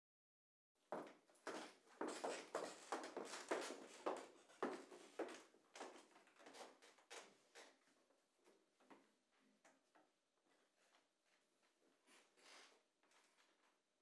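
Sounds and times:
footsteps on wooden floor: 0.9s - 6.0s.

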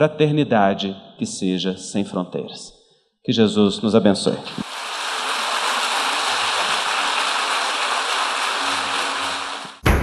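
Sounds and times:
audience applauding: 4.6s - 9.8s.

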